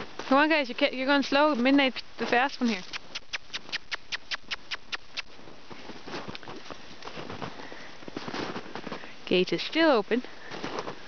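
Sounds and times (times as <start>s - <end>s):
footsteps crunching in snow: 0.0s - 9.8s, 10.4s - 11.0s.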